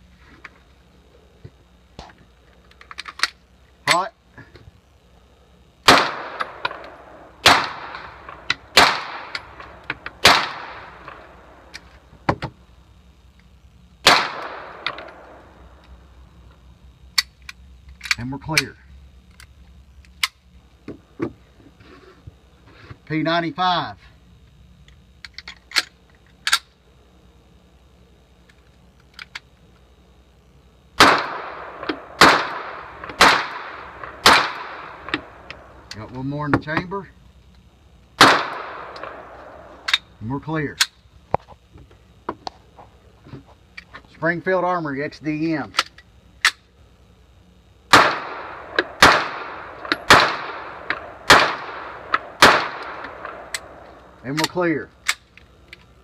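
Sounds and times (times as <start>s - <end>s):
pistol shots with echo: 5.9s - 11.2s, 14.0s - 15.4s, 31.0s - 35.4s, 38.2s - 39.8s, 47.9s - 53.8s.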